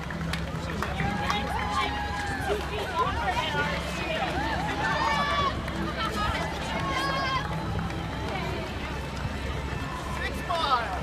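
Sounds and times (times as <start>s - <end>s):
crowd chatter: 0.0s - 11.0s
runners' footsteps on asphalt: 0.0s - 11.0s.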